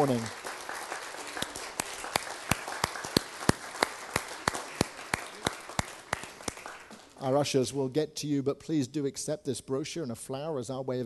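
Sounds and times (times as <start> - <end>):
crowd applauding: 0.0 - 7.2.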